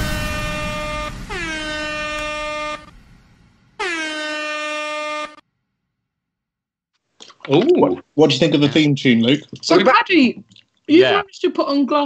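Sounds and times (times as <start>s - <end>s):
air horn blasts: 0.0s - 3.0s, 3.8s - 5.4s.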